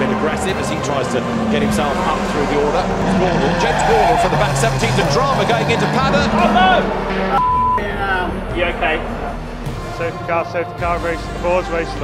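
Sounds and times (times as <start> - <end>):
indistinct voices: 0.0 - 12.0
racing car engines: 0.0 - 12.0
short high beep: 7.4 - 7.8.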